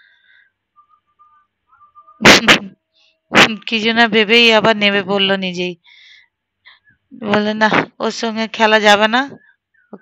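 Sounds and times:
whistle-like tones: 0.0s - 2.6s
short faint peeps: 0.2s - 3.7s.

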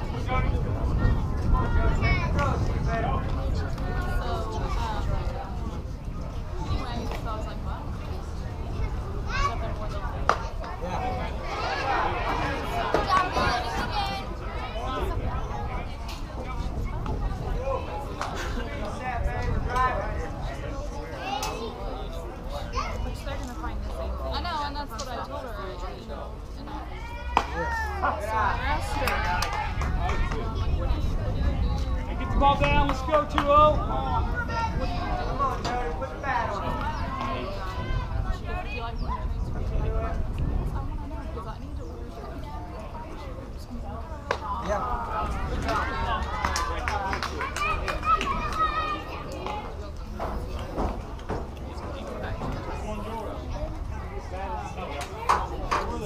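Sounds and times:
girls shouting and chattering: 0.0s - 56.0s.

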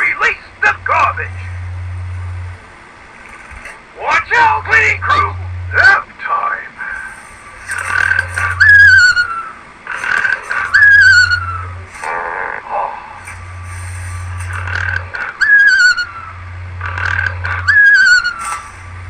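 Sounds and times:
steady low hum: 0.0s - 19.0s
falling warbling whistle tone: 8.4s - 9.6s, 10.6s - 11.8s, 15.4s - 16.4s, 17.6s - 18.6s.

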